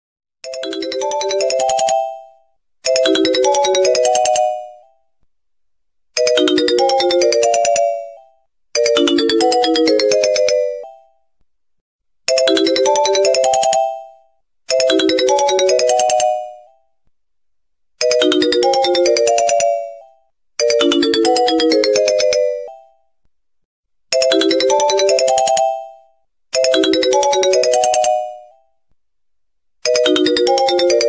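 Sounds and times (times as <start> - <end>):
ringtone melody: 0.4 - 5.0, 6.2 - 11.2, 12.3 - 16.8, 18.0 - 23.1, 24.1 - 28.7, 29.8 - 31.0.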